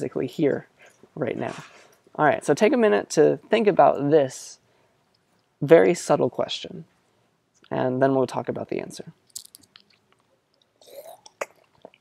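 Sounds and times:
mouth clicks and lip smacks: 9.2 - 12.0.

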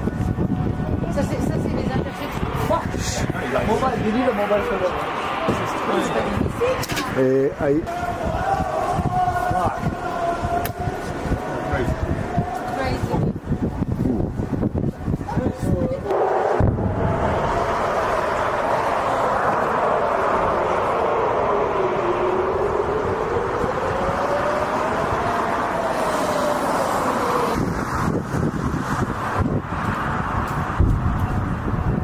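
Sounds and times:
air-raid siren wailing: 0.0 - 14.3, 15.0 - 32.0
steady rushing background noise: 0.0 - 32.0.

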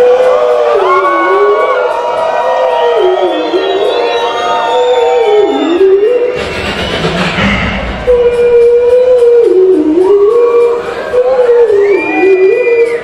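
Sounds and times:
crowd noise: 0.0 - 13.0
deep bass sound: 6.3 - 10.2
beatboxer whistle-like tone: 11.6 - 13.0.

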